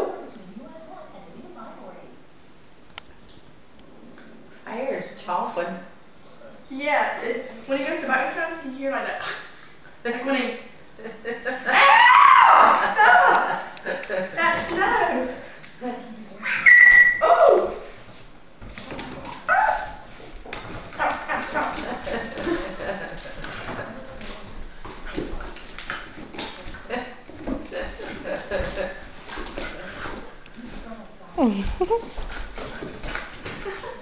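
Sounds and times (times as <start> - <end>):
small dog yipping and whining: 16.4 - 17.6
dog claws clicking on hardwood floor: 18.6 - 30.8.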